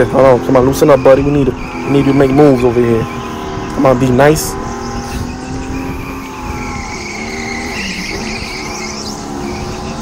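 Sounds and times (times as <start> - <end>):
go-kart motor whine: 0.0 - 10.0
tyre noise and squeal: 0.0 - 10.0.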